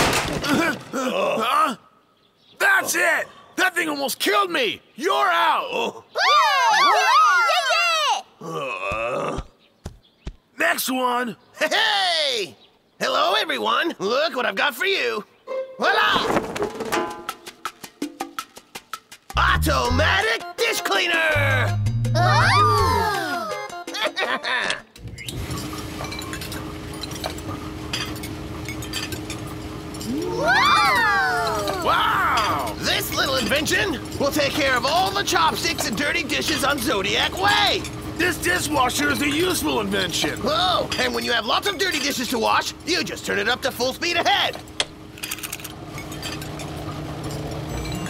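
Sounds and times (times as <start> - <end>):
cartoon character voices calling out: 5.0 - 8.4, 15.8 - 16.3, 19.4 - 23.7, 30.2 - 32.8
dish-washing machine rumbling: 25.0 - 48.0
porcelain bowls clinking: 25.5 - 30.2, 45.3 - 48.0.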